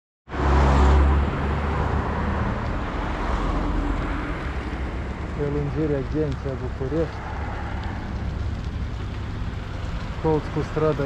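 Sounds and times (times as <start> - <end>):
street traffic noise: 0.3 - 11.0.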